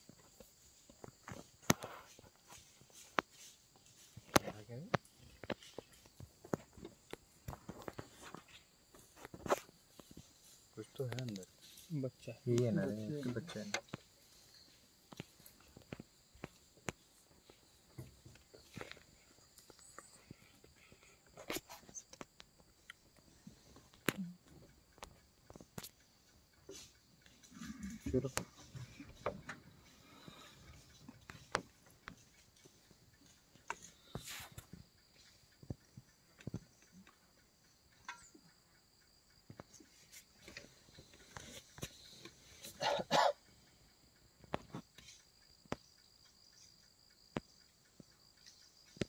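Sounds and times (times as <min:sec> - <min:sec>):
crunches and rustles in dry grass: 0:00.0 - 0:13.3.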